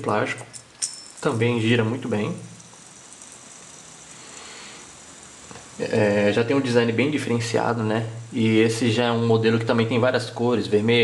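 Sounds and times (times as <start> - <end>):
fidget spinner whirring: 0.5 - 10.4.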